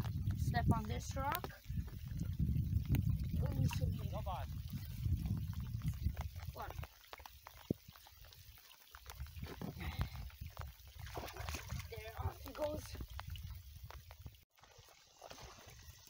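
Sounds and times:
wind on microphone: 0.0s - 6.9s, 9.1s - 14.4s
water splashing and lapping: 0.0s - 16.0s.

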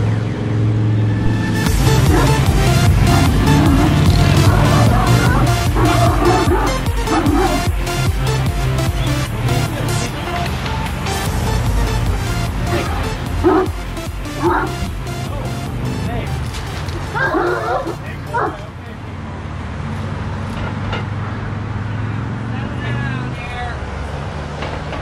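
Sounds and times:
dog barking: 2.0s - 2.4s, 3.1s - 7.7s, 12.7s - 13.8s, 14.4s - 14.8s, 17.2s - 18.7s
dog whining: 3.1s - 7.7s, 17.1s - 18.6s.

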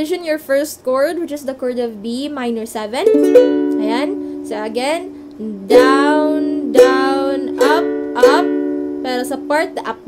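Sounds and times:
ukulele strumming: 3.0s - 10.0s.

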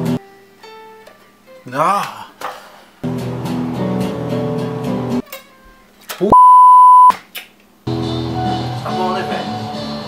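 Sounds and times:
loud high beep: 6.3s - 7.1s.

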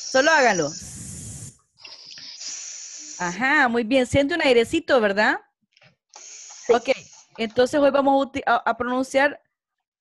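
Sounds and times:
person hissing: 0.0s - 1.6s, 2.2s - 3.4s.

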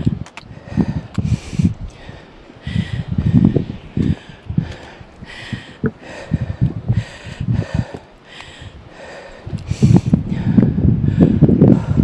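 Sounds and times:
wind buffeting microphone: 0.0s - 12.0s
heavy rapid breathing: 0.5s - 12.0s.

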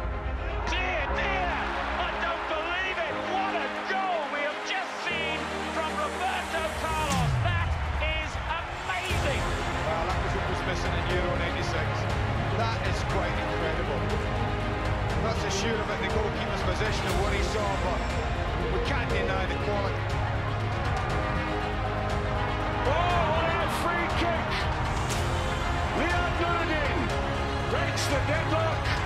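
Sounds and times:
epic trailer music: 0.0s - 29.0s.

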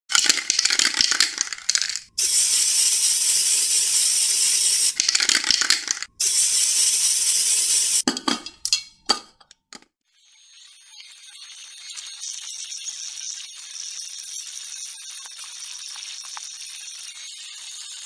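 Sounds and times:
steady hiss: 6.2s - 8.0s.

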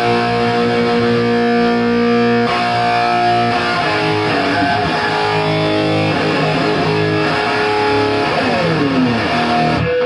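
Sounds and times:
distorted electric guitar: 0.0s - 10.0s.

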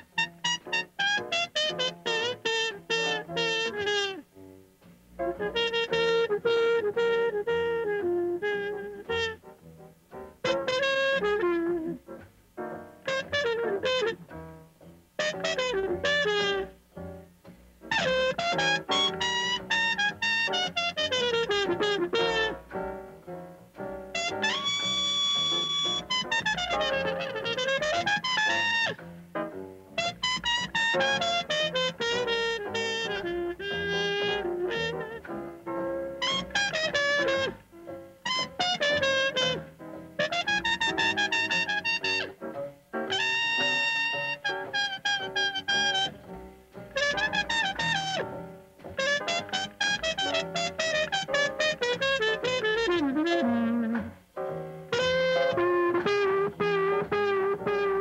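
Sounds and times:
trumpet solo: 0.0s - 4.2s, 5.3s - 9.4s, 10.4s - 12.0s, 13.0s - 14.2s, 15.2s - 16.8s, 17.9s - 22.8s, 24.0s - 29.0s, 30.0s - 35.3s, 36.1s - 37.6s, 38.2s - 42.4s, 43.1s - 58.0s
small jazz group: 0.0s - 58.0s.

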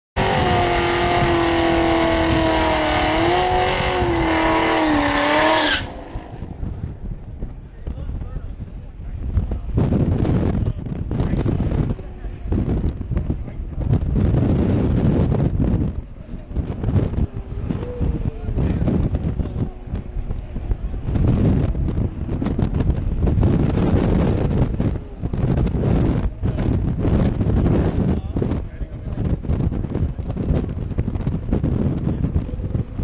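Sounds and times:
car engine revving high: 0.2s - 6.9s
uneven engine noise: 0.2s - 33.0s.

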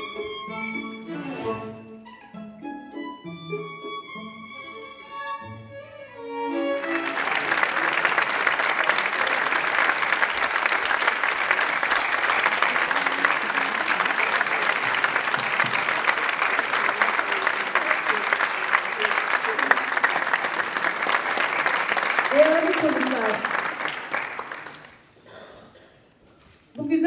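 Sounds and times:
string quartet music: 0.0s - 7.8s
audience applauding: 6.6s - 25.3s.

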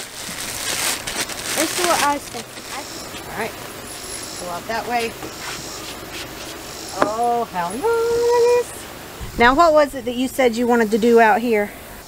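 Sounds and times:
insects buzzing: 0.0s - 12.0s.

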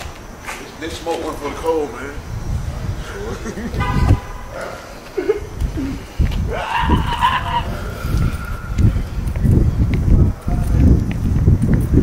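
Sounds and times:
footsteps on pavement: 0.0s - 12.0s
wind rumble on microphone: 0.0s - 12.0s.

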